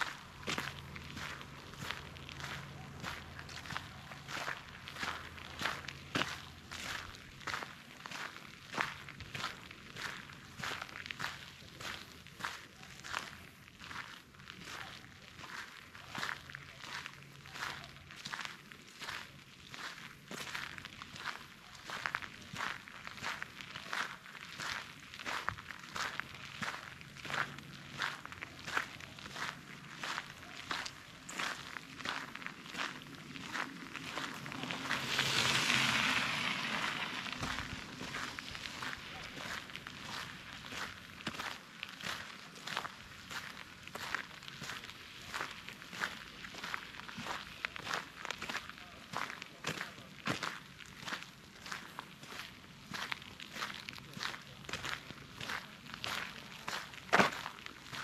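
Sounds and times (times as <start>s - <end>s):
footsteps crunching on gravel: 0.0s - 58.0s.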